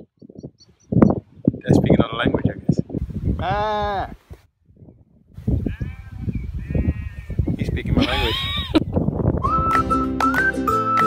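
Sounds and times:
sheep bleating: 0:05.6 - 0:07.4.

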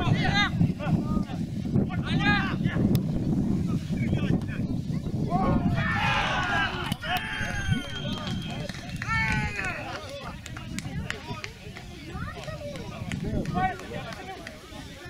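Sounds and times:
men shouting in celebration: 0:05.4 - 0:07.8.

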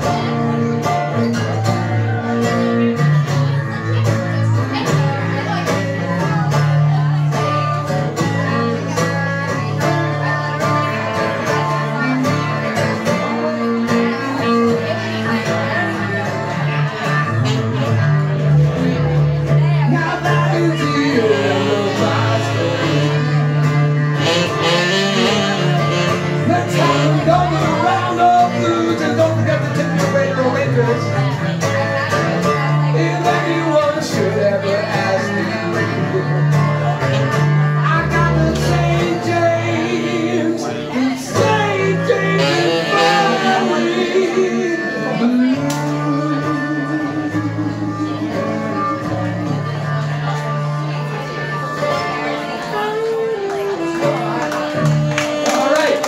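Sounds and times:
acoustic guitar strumming: 0:00.0 - 0:56.0
saxophone line: 0:00.0 - 0:56.0
bowed electric cello notes: 0:20.4 - 0:29.2, 0:41.5 - 0:55.2.

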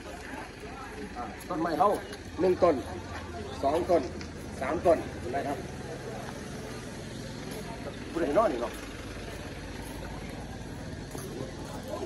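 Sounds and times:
diesel truck engine running: 0:00.0 - 0:12.0.

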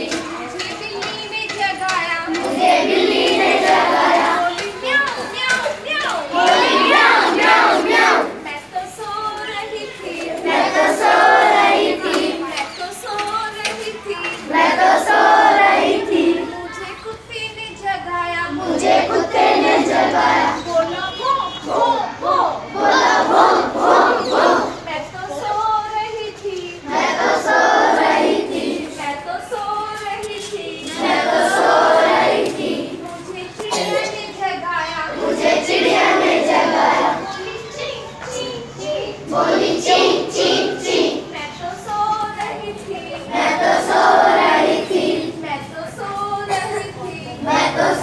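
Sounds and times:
children singing and calling out: 0:00.0 - 0:48.0
children shouting together: 0:02.4 - 0:08.4, 0:35.1 - 0:41.3
woman singing: 0:08.3 - 0:18.9, 0:24.8 - 0:27.0, 0:28.7 - 0:31.7, 0:32.9 - 0:35.4, 0:41.2 - 0:43.9, 0:45.1 - 0:48.0.

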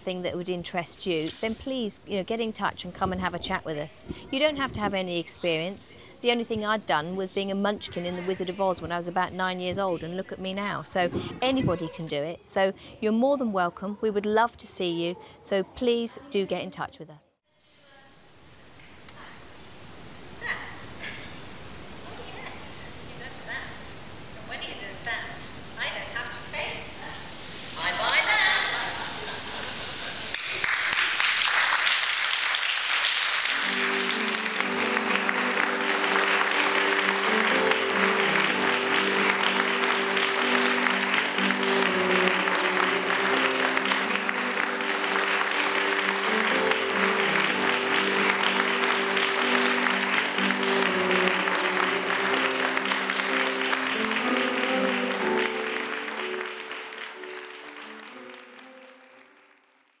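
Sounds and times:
audience applauding: 0:28.0 - 1:00.0
instrumental music chords: 0:33.6 - 0:59.4.

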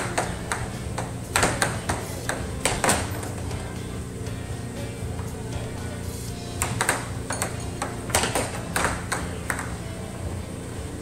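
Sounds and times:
air hockey puck clacks: 0:00.0 - 0:03.6, 0:06.6 - 0:09.8
background music: 0:00.0 - 0:11.0.

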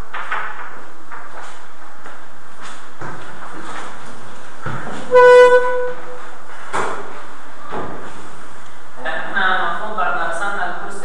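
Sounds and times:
loud buzzy beep: 0:05.1 - 0:06.2.

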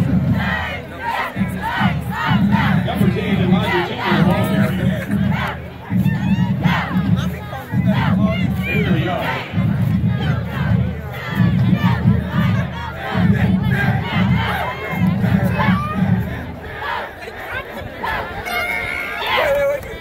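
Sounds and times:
cheerleaders yelling a cheer: 0:03.4 - 0:20.0.

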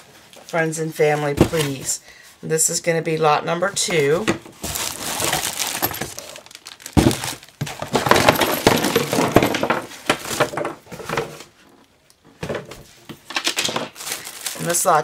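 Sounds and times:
cellophane and cardboard crinkling: 0:03.8 - 0:11.6, 0:12.8 - 0:15.0.

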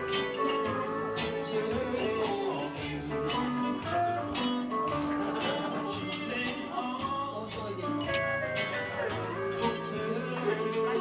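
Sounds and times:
acoustic guitar picked notes: 0:00.0 - 0:11.0
murmur of voices: 0:00.0 - 0:11.0.

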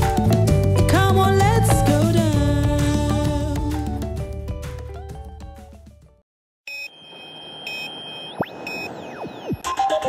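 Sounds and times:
short electronic beeps: 0:06.7 - 0:10.0.

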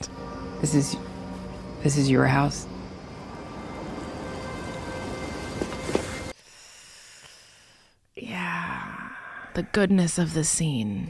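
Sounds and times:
sustained musical drone: 0:00.0 - 0:06.4.

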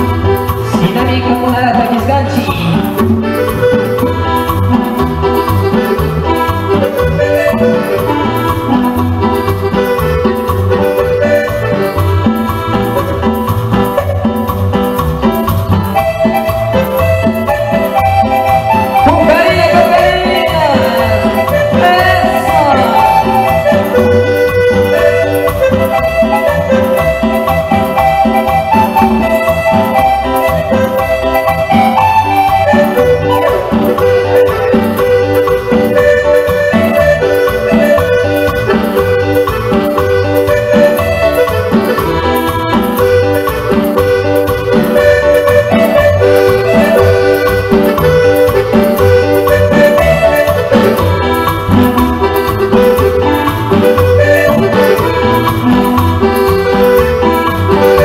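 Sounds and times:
bass line: 0:00.0 - 0:58.0
congas: 0:00.0 - 0:58.0
sustained melody instrument: 0:00.0 - 0:58.0.

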